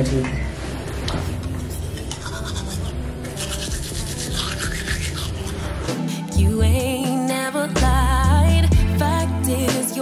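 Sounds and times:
toothbrush scrubbing teeth: 1.6s - 6.0s.

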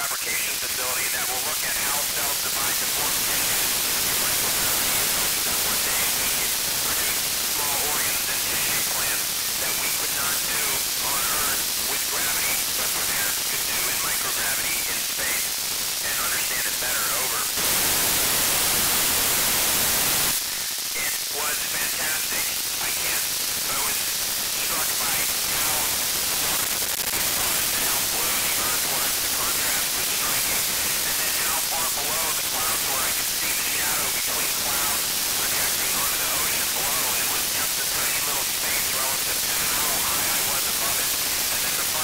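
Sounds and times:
man's voice over radio: 0.0s - 17.8s, 20.2s - 42.0s
radio static hiss: 0.0s - 42.0s.

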